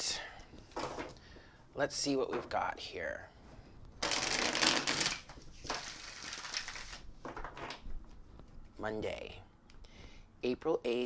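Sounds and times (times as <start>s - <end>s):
cards being riffle-shuffled: 4.0s - 7.8s.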